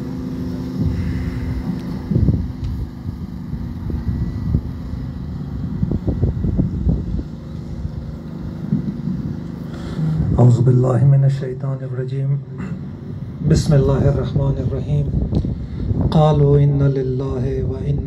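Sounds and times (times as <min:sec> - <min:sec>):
wind buffeting microphone: 0:00.0 - 0:11.4, 0:12.8 - 0:18.0.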